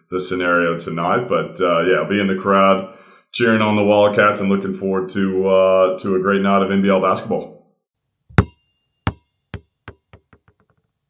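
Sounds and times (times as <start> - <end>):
basketball bouncing on hard floor: 8.3 - 10.8.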